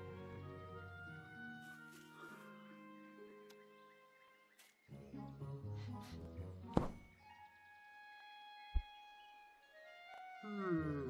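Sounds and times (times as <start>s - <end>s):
sharp thunk: 6.8s - 7.0s.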